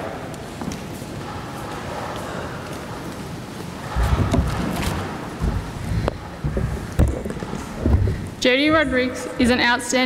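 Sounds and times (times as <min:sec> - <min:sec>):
low thumps and knocks: 0:03.9 - 0:08.4
woman speaking: 0:08.4 - 0:10.0.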